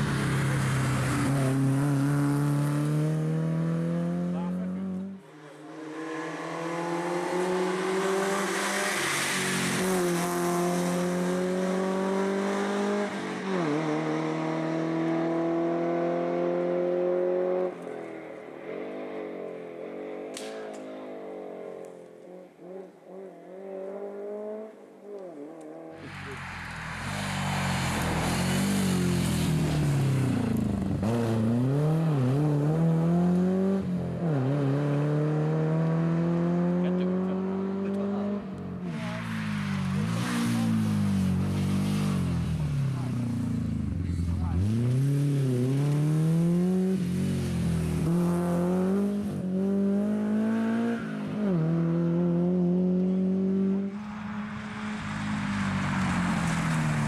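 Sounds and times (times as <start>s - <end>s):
rally car engines at full throttle: 0.0s - 57.0s.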